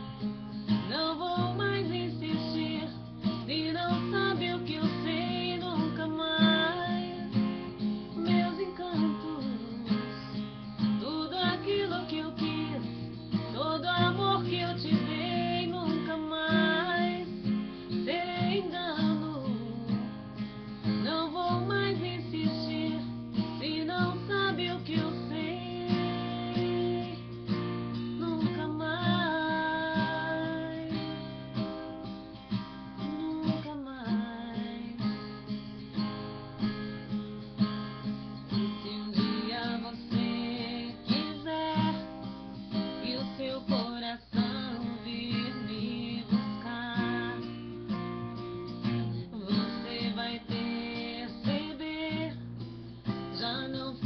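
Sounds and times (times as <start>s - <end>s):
strummed acoustic guitar: 0.0s - 54.0s
woman singing: 0.6s - 35.6s, 38.5s - 54.0s.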